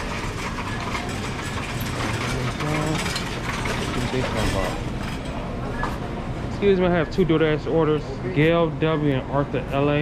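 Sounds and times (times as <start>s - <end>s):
shopping cart rattling: 0.0s - 5.4s.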